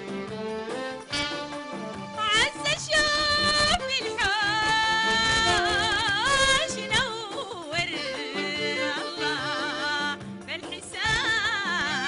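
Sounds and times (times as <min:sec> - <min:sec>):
instrumental accompaniment: 0:00.0 - 0:12.0
woman singing: 0:02.2 - 0:12.0.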